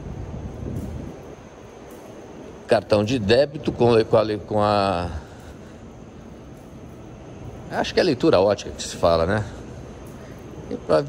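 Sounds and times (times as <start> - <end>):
low rumbling metro platform noise: 0.0 - 11.0.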